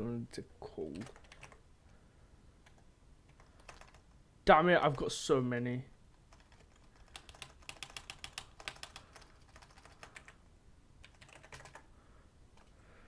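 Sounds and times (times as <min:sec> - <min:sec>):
computer keyboard typing: 0:01.0 - 0:01.6, 0:02.6 - 0:04.1, 0:06.2 - 0:10.4, 0:11.0 - 0:11.9.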